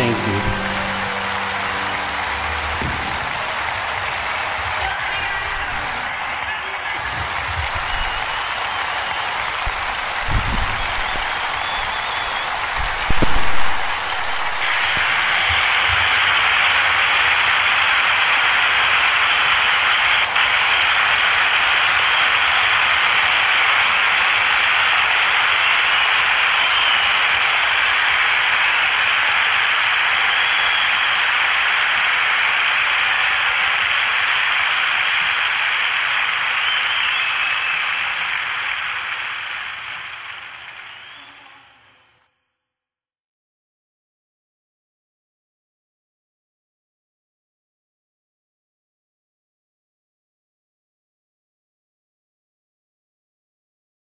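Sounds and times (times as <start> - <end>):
audience applauding: 0.0 - 42.1.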